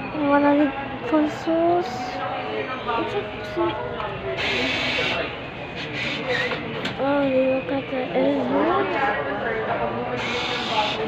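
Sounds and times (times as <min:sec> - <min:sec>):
background talk: 0:00.0 - 0:11.0
bill acceptor whirring: 0:04.4 - 0:06.5, 0:10.2 - 0:11.0.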